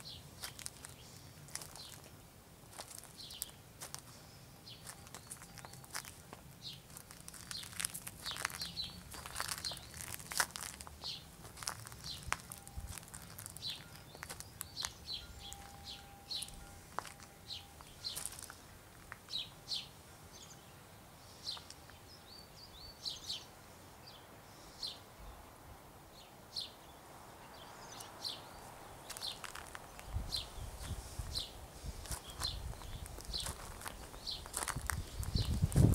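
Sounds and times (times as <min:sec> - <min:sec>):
small birds chirping: 0:00.0 - 0:35.9.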